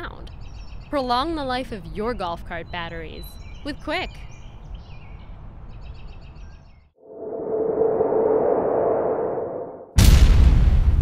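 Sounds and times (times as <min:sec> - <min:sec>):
whooshing transition effect: 0:07.0 - 0:10.0.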